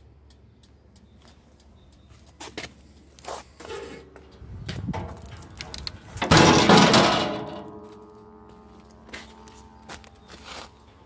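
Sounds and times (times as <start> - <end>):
metal scraping: 3.6 - 4.2, 4.8 - 8.3
metal panel banging shut: 6.2 - 7.8.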